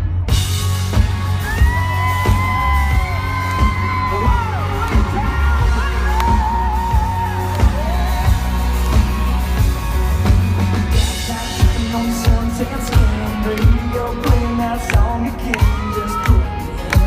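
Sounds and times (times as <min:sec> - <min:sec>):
live band playing: 0:00.0 - 0:17.0
fans whooping: 0:00.8 - 0:11.7.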